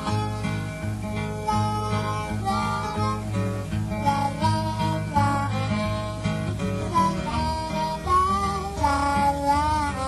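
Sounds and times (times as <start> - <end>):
acoustic guitar accompaniment: 0.0 - 10.0
high wavering melody: 0.0 - 10.0.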